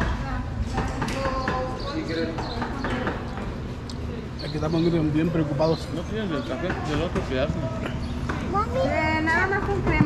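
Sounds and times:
background conversation: 0.0s - 10.0s.

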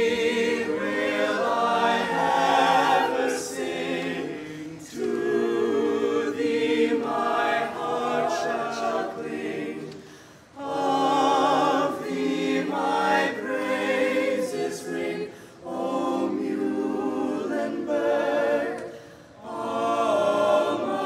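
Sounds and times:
choir singing unaccompanied: 0.0s - 21.0s.

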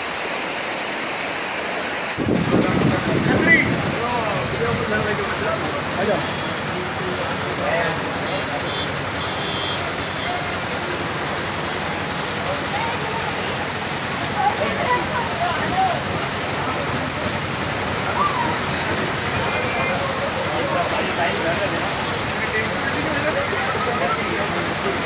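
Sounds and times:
heavy rain on street: 0.0s - 25.0s
faint voices: 2.4s - 25.0s.

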